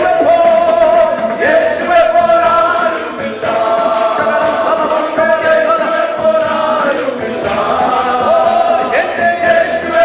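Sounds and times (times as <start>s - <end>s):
men singing worship song: 0.0s - 10.0s.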